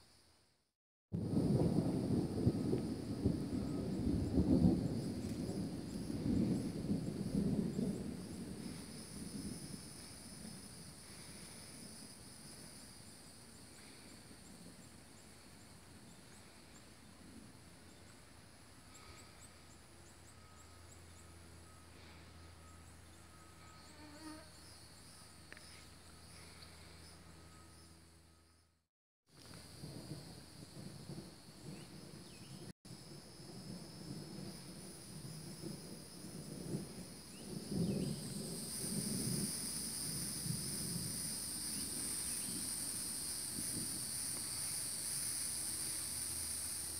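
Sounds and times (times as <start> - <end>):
rolling thunder: 1.2 - 15.4, 29.6 - 46.6
insect buzz: 2.5 - 28.6, 29.4 - 46.9
flying insect buzzing: 23.7 - 24.6.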